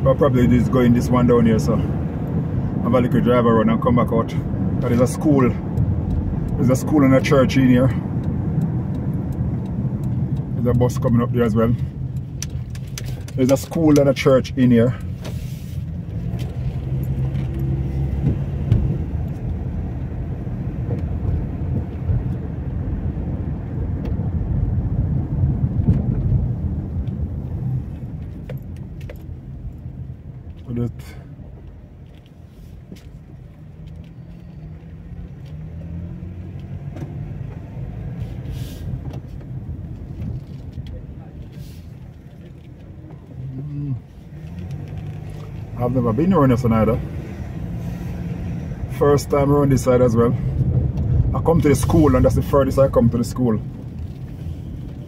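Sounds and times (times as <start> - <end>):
car engine and road noise: 0.0 - 55.0
small clicks and rattles: 12.0 - 14.2, 44.4 - 45.7.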